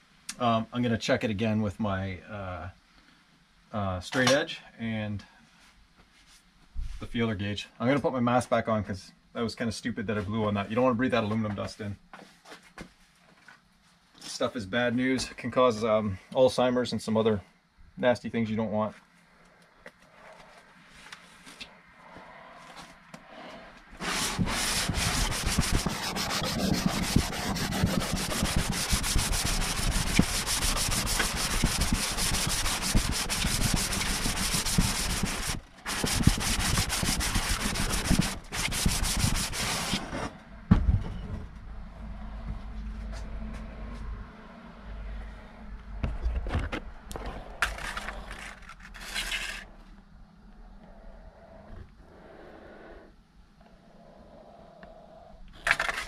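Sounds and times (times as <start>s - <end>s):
metal rubbed on sandpaper: 24.0s - 40.2s.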